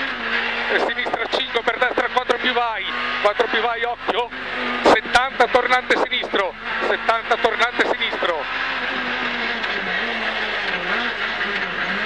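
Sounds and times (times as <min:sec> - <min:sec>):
car engine at speed: 0:00.0 - 0:12.0
road noise: 0:00.0 - 0:12.0.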